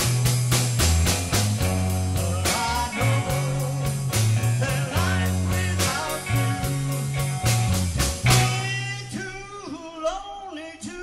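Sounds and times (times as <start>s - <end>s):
rock and roll band playing: 0.0s - 10.4s.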